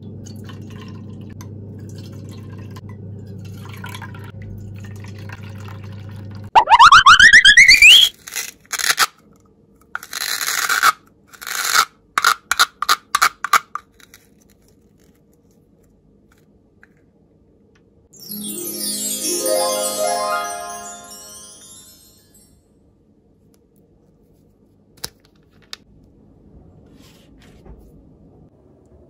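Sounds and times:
rising whistle sound effect: 6.6 - 8.1
plastic toy clicking and rustling: 10.0 - 14.2.

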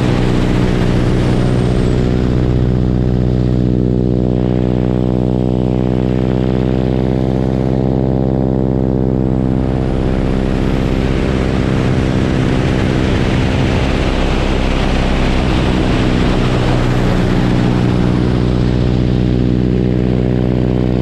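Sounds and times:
propeller engine droning: 0.0 - 21.0
rushing wind: 0.0 - 21.0.

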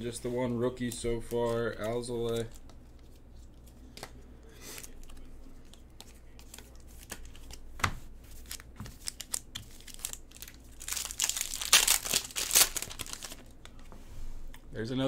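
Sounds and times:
foil wrapper crinkling: 8.3 - 13.7
pack being torn open: 8.4 - 13.5.

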